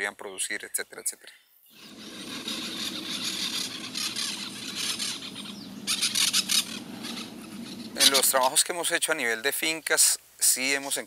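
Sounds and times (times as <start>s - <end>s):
birds calling: 0.3s - 8.7s
steady high hiss: 1.6s - 11.0s
rapid high-pitched chattering: 1.8s - 8.3s.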